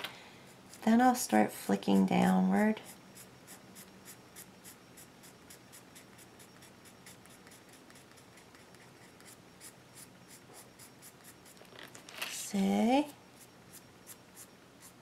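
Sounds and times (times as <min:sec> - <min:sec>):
pencil scratching on paper: 0:01.8 - 0:11.6.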